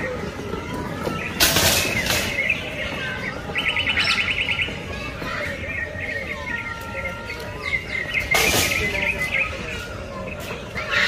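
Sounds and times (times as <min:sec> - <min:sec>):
birds chirping: 0:00.0 - 0:11.0
fast bird trill: 0:01.2 - 0:11.0.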